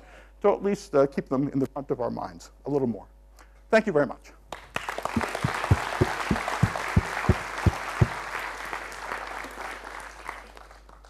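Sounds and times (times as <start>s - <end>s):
audience applauding: 4.6s - 11.0s
low thumping: 5.2s - 8.2s.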